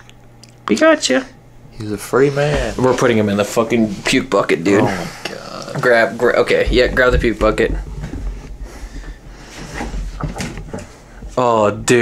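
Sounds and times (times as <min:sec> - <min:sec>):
plastic bucket knocks and clicks: 0:05.8 - 0:08.4.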